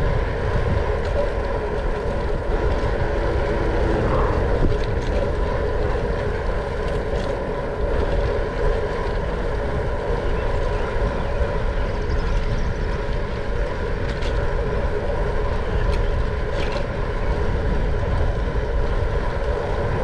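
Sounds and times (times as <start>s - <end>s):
steady hum: 0.0s - 20.0s
wind buffeting microphone: 0.0s - 20.0s.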